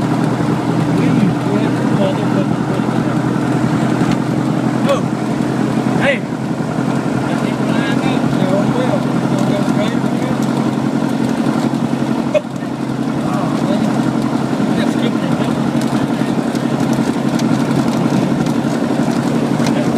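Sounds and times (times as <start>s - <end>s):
plane piston engine running: 0.0s - 19.9s.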